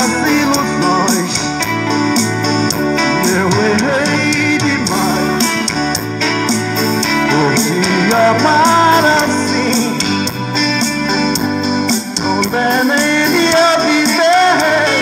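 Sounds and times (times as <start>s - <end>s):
man singing through a loudspeaker: 0.0s - 1.7s, 3.0s - 5.7s, 7.2s - 10.4s, 12.2s - 15.0s
backing track with guitar and beat: 0.0s - 15.0s.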